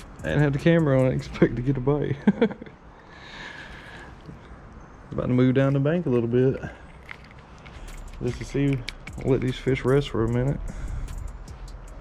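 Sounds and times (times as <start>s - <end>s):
man laughing: 2.0s - 3.0s.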